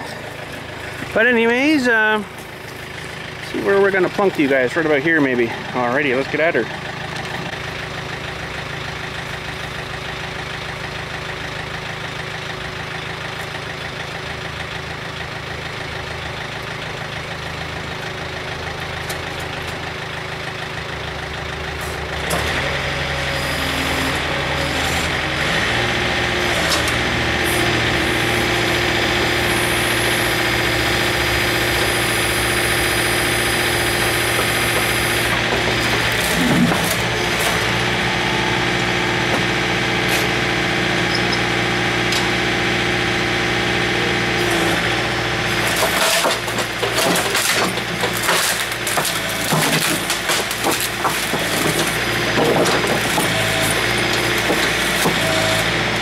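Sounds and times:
diesel engine revving: 0.0s - 56.0s
hydraulic boom working: 26.6s - 42.3s.

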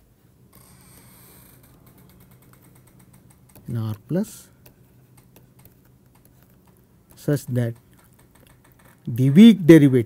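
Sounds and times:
stylus tapping on tablet screen: 2.0s - 4.0s, 4.6s - 9.0s.

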